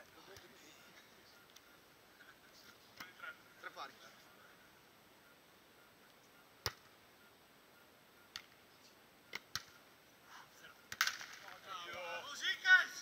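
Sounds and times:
volleyball being struck: 6.6 - 6.9, 10.9 - 12.1.

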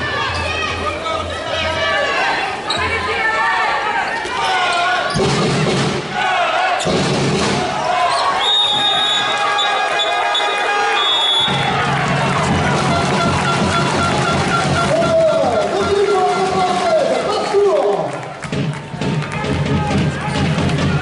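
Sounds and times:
crowd voices: 0.0 - 21.0
music over public address: 10.3 - 21.0.

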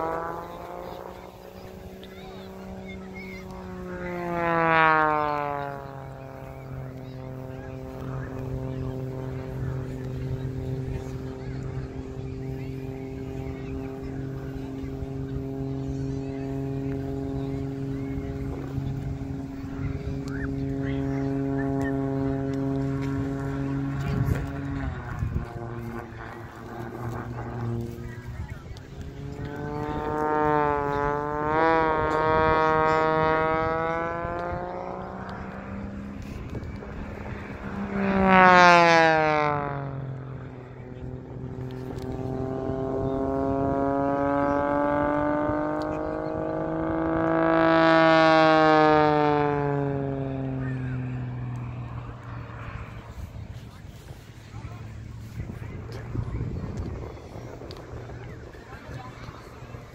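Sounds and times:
aircraft flying past overhead: 0.0 - 59.9.

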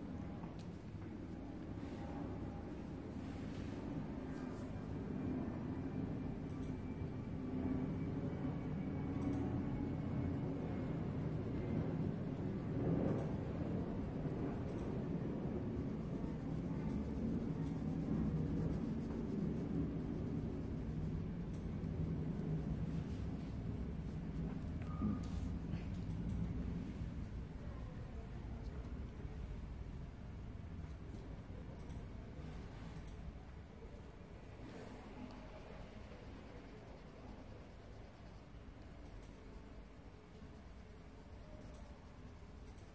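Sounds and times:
low background hum: 0.0 - 42.9
coloured pencil rubbing on paper: 15.6 - 24.8.

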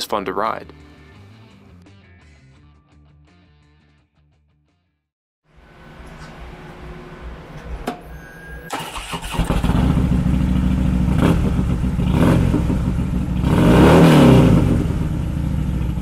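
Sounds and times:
motorcycle engine revving: 8.8 - 16.0.

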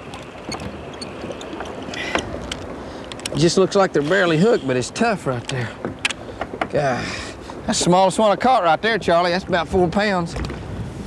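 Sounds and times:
choppy water around boat: 0.0 - 11.0
low wind: 0.0 - 11.0
faint clicks: 0.1 - 3.4.

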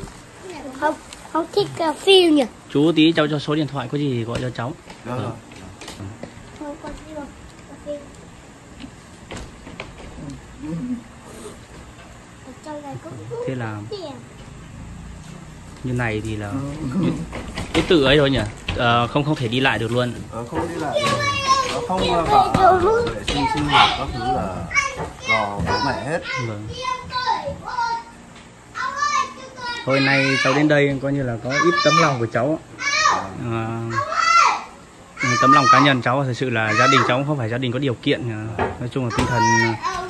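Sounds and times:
man talking: 21.8 - 24.7.

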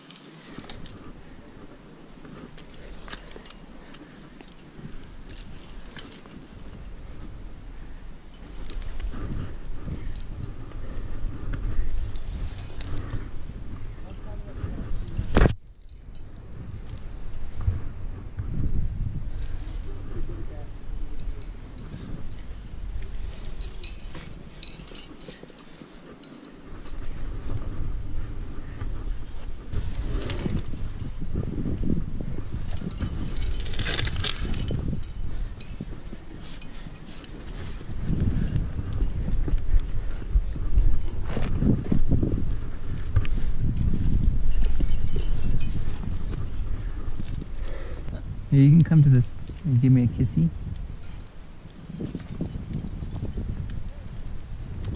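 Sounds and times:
climbing gear clinking: 0.0 - 54.9
wind rumble on microphone: 0.0 - 54.9.

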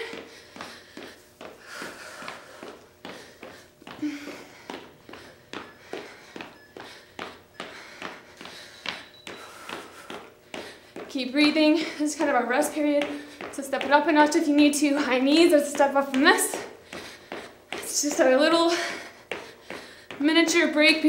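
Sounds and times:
faint breathing: 0.0 - 12.4, 13.0 - 13.6, 16.5 - 20.2
footsteps jogging on studio floor: 0.0 - 21.0.

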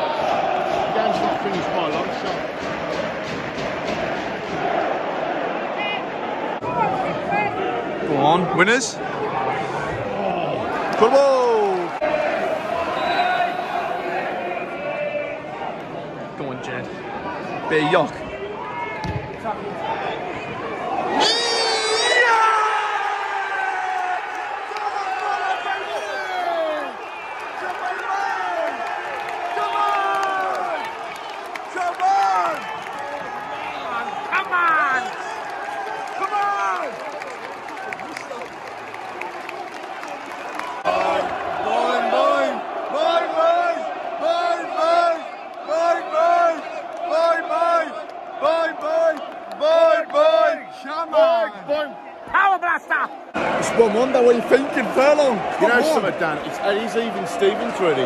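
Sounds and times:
crowd rhythmic chant: 0.0 - 6.3, 11.8 - 14.9, 39.7 - 50.6
football crowd roaring: 0.0 - 58.0.

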